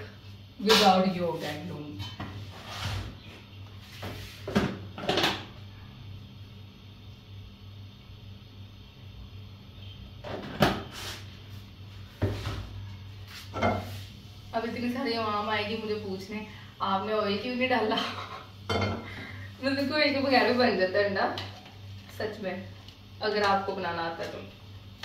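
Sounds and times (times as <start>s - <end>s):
steady low hum: 0.0s - 25.0s
cookware knocks and clatters: 4.5s - 5.5s, 18.0s - 19.1s.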